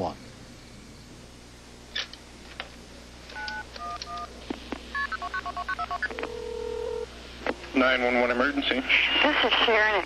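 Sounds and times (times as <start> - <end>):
key and handset clicks: 3.3 - 4.3
telephone keypad beeps: 3.4 - 4.3.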